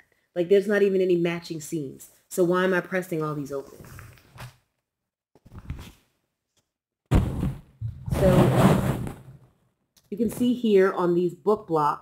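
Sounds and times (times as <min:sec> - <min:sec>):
fabric rustling and sliding: 0:07.1 - 0:09.4.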